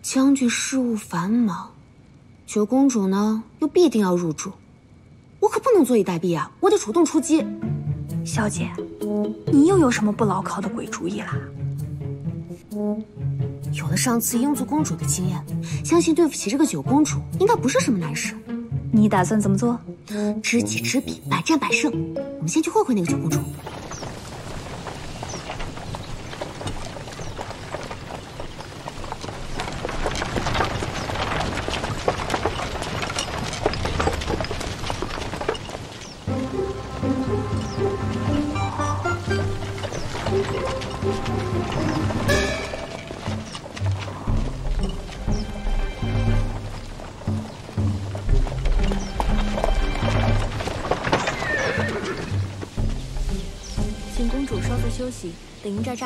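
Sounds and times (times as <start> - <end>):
background music: 6.6 - 23.6, 36.3 - 56.0
horse hooves clip-clopping: 23.3 - 55.8
footsteps of a group walking: 23.4 - 54.8
horse whinnying: 50.9 - 52.5.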